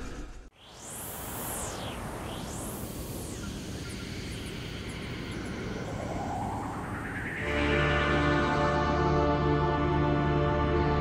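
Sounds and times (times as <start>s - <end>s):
synthesizer whoosh: 0.0s - 10.8s.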